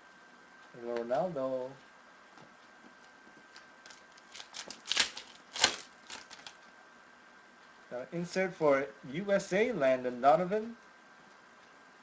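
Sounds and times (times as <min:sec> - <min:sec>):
trading cards clicking and rustling: 0:02.9 - 0:06.7
card snaps: 0:03.9 - 0:06.6.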